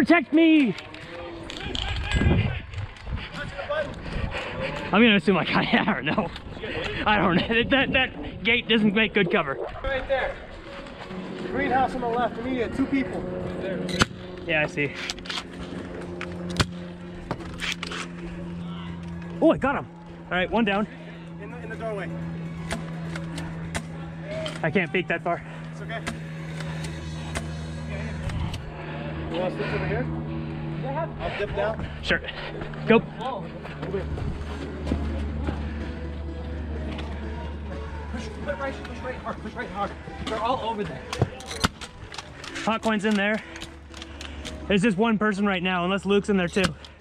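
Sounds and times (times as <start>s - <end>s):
steady low hum: 0.0s - 47.0s
muffled low thuds and rumble: 33.5s - 36.4s.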